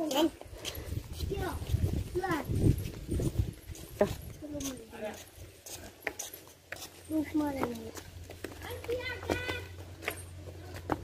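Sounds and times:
footsteps on unpaved lane: 0:00.0 - 0:11.0.

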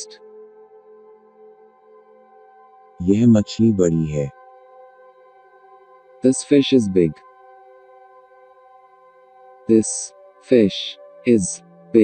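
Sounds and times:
ambient drone music: 0:00.0 - 0:12.0
person speaking: 0:03.0 - 0:04.3, 0:06.3 - 0:07.2, 0:09.7 - 0:12.0.

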